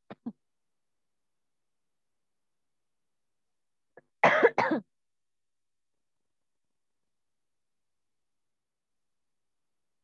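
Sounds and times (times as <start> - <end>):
person coughing: 4.2 - 4.9.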